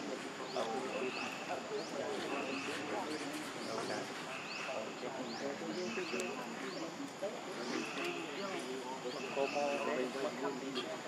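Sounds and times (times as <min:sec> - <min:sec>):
background voices chattering: 0:00.0 - 0:11.0.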